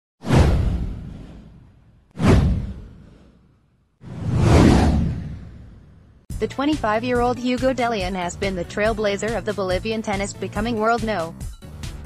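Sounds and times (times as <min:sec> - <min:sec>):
whoosh sweeping into rumble: 0:00.2 - 0:06.3.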